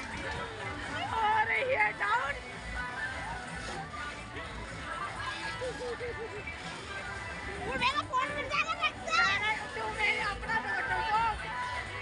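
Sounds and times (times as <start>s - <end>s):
riders shrieking and laughing: 5.1s - 6.8s.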